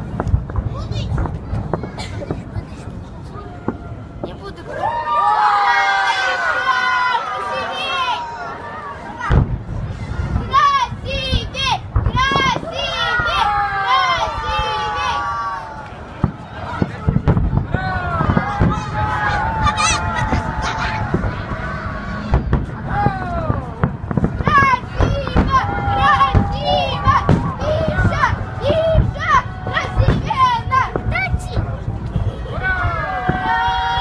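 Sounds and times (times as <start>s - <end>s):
low firework thuds: 0.0s - 4.5s, 9.2s - 13.4s, 15.9s - 33.7s
children shouting and squealing: 4.6s - 16.0s, 17.7s - 34.0s.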